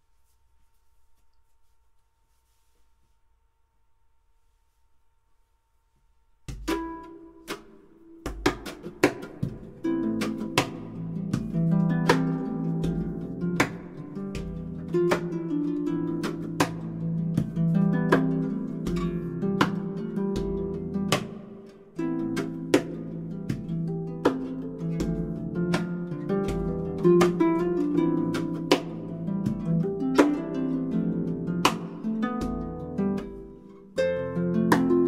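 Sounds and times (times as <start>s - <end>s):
harp plucked melody: 6.5s - 35.0s.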